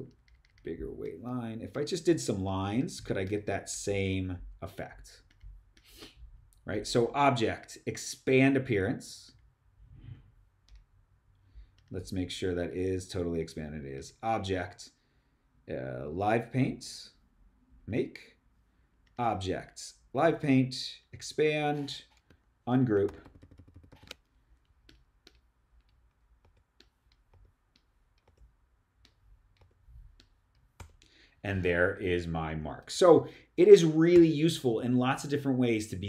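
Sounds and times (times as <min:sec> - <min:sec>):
computer mouse and keyboard clicks: 0:00.0 - 0:01.2, 0:05.2 - 0:05.9, 0:22.0 - 0:22.4, 0:23.0 - 0:31.1.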